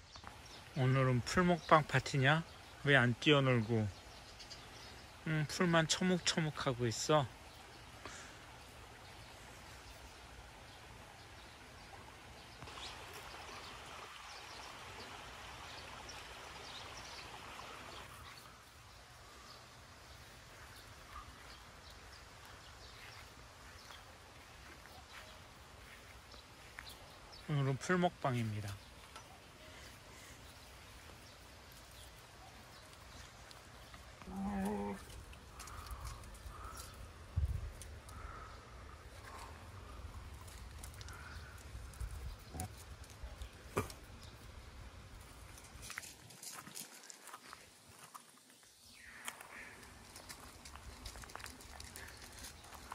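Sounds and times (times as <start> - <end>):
outdoor background hiss: 0.0 - 52.9
small birds chirping: 0.0 - 52.9
dog paws clicking on stones: 32.7 - 37.0, 45.5 - 48.3, 49.2 - 52.9.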